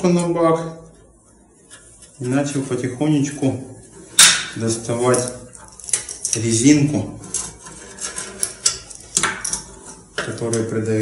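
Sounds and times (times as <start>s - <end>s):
screwdriver scraping metal tub: 4.9s - 10.9s.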